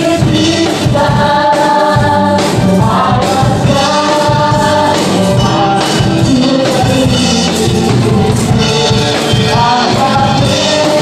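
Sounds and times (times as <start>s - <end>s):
bass guitar: 0.0s - 11.0s
drum kit: 0.0s - 11.0s
electric guitars: 0.0s - 11.0s
keyboard: 0.0s - 11.0s
singers singing together: 0.0s - 11.0s.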